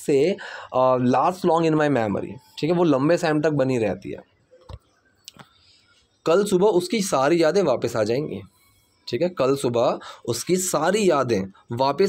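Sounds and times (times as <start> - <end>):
man speaking: 0.0 - 4.3, 6.2 - 8.5, 9.1 - 12.0.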